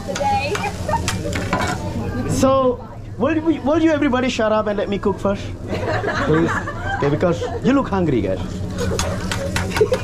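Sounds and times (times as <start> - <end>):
noodles and egg sizzling on griddle: 0.0 - 2.7, 8.6 - 10.0.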